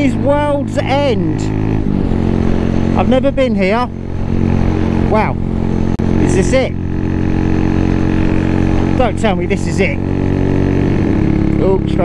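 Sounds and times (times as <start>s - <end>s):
low wind rumble on microphone: 0.0s - 12.0s
motorcycle engine running: 0.0s - 12.0s.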